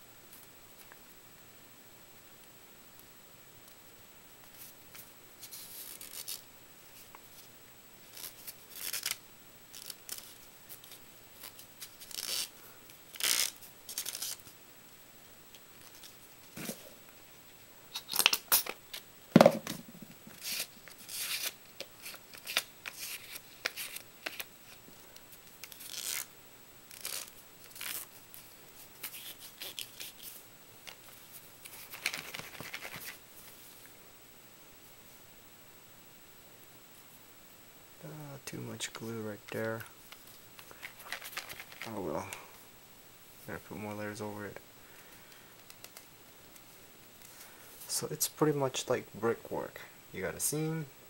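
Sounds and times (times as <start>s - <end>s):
paper rustling and rubbing: 4.5s - 7.5s, 8.1s - 12.5s, 13.1s - 14.5s, 20.3s - 24.8s, 26.9s - 33.8s, 40.6s - 42.0s
paper rustling and crinkling: 26.9s - 33.7s, 40.1s - 42.0s.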